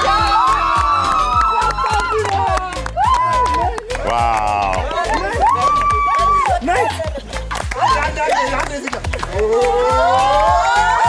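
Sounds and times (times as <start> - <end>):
background music with steady beat: 0.0 - 11.0
group cheering and whooping: 0.0 - 11.0.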